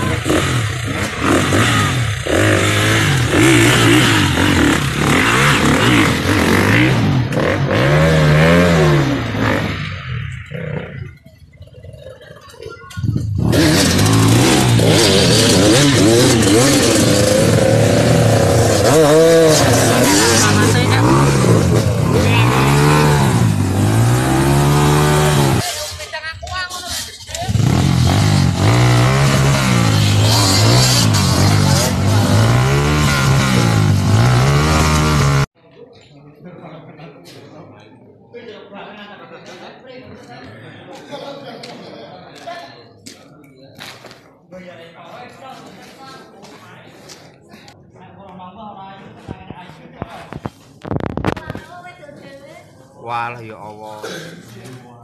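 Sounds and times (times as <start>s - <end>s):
dirt bike engine revving: 0.0s - 11.3s, 13.1s - 26.2s, 26.8s - 35.5s.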